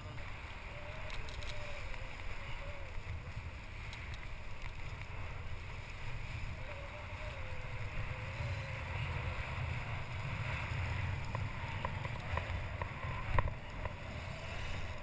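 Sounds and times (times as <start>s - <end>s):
faint ticks: 0.0s - 15.0s
faint wavering whine: 0.0s - 15.0s
wind rumble on microphone: 0.0s - 15.0s.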